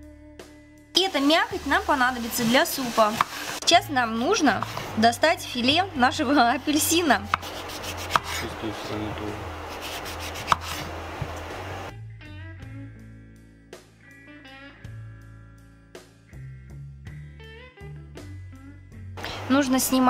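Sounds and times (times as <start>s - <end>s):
knife cutting orange peel: 7.2s - 8.6s, 9.7s - 11.4s
light guitar music: 11.0s - 20.0s.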